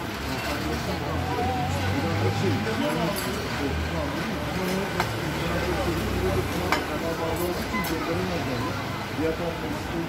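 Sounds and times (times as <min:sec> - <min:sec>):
people talking: 0:00.1 - 0:10.0.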